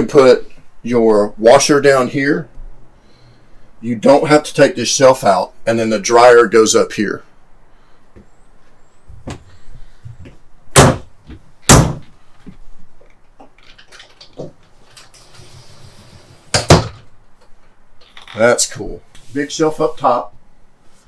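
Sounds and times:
cabinet doors thudding shut: 0:10.8 - 0:11.1, 0:11.7 - 0:12.0, 0:16.5 - 0:17.1.

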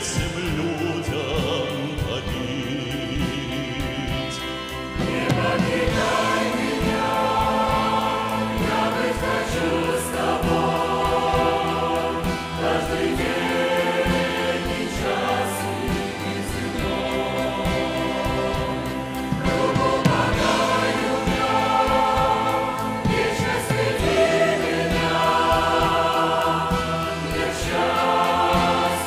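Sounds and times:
mixed choir singing a hymn: 0:00.0 - 0:29.0.

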